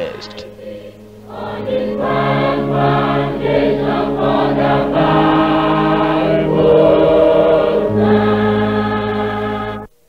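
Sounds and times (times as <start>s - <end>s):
choir singing gospel harmony: 0.0s - 9.9s.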